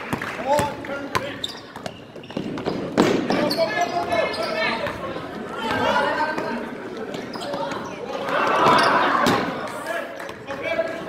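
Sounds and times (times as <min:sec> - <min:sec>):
basketball bouncing on hardwood: 0:00.1 - 0:03.4
players shouting in a gym: 0:03.4 - 0:11.0.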